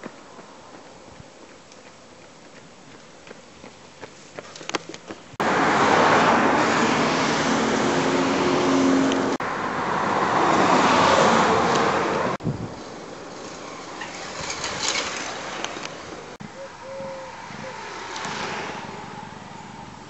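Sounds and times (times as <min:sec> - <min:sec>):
motor vehicle passing close by: 0:05.4 - 0:12.4, 0:16.8 - 0:20.0.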